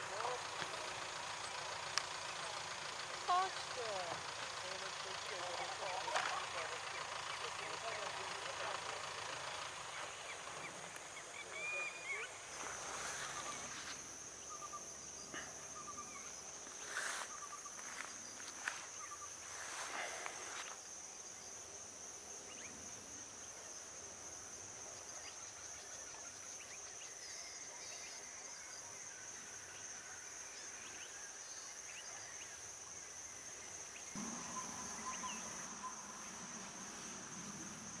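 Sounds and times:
high-pitched insect drone: 29.8s - 38.0s
bird chirps: 33.9s - 37.1s.

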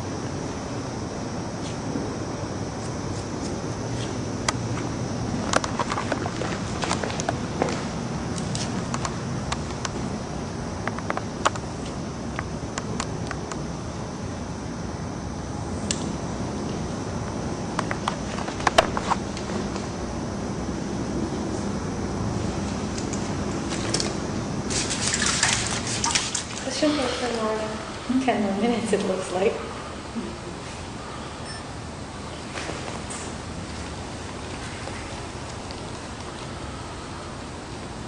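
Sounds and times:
steady background hum: 0.0s - 38.0s.

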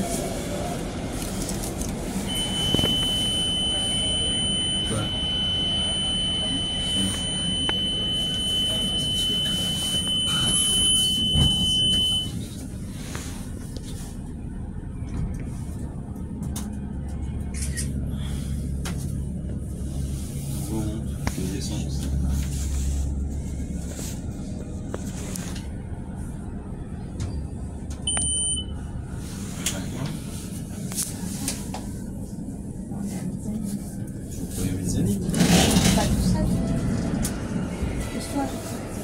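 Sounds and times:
elevator low rumble: 0.0s - 39.0s
high-pitched buzzer tone: 2.3s - 12.3s.

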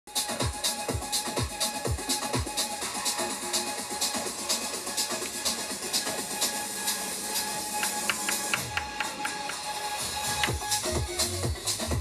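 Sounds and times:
electronic dance music beat: 0.1s - 12.0s.

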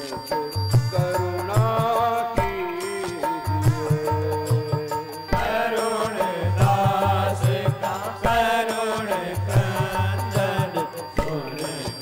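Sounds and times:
held instrumental drone: 0.0s - 12.0s
person singing chant-like melody: 0.0s - 12.0s.

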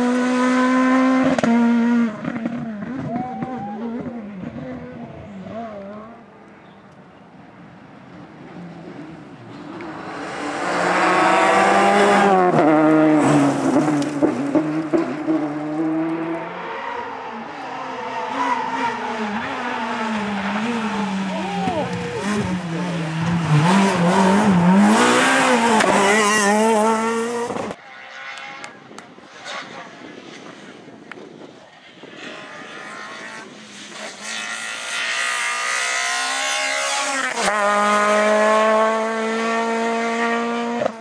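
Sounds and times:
rally cars revving past: 0.0s - 6.4s, 8.0s - 30.9s, 31.8s - 41.0s.

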